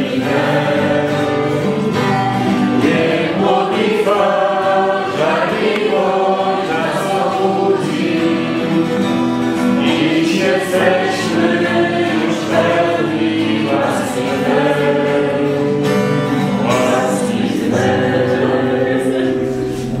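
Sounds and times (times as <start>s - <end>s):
acoustic guitar strumming: 0.0s - 20.0s
group singing a hymn: 0.0s - 20.0s.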